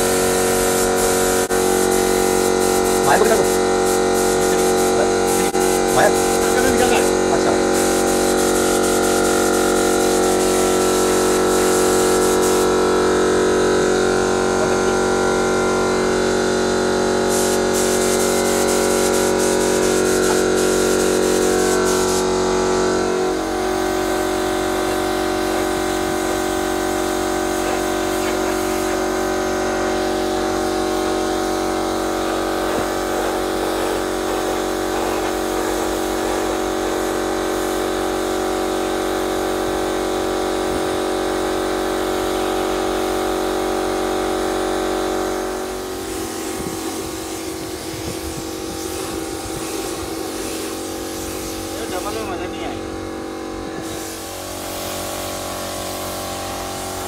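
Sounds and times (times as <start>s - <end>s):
electric air compressor running: 0.0s - 57.0s
paint spray gun hissing: 0.0s - 57.0s.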